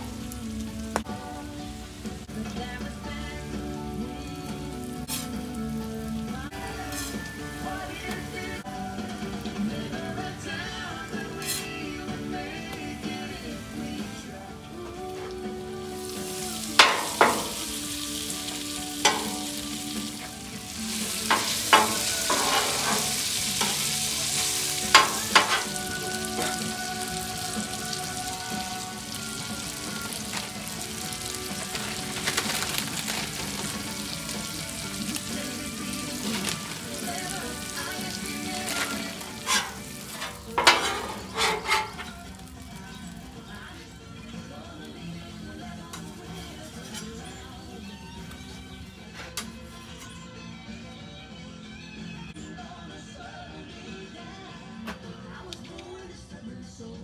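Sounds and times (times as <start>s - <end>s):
meat and onions sizzling: 0.0s - 49.1s
metal spatula scraping griddle: 5.0s - 5.4s, 6.8s - 7.3s, 11.2s - 12.1s, 16.1s - 28.6s, 29.2s - 42.5s.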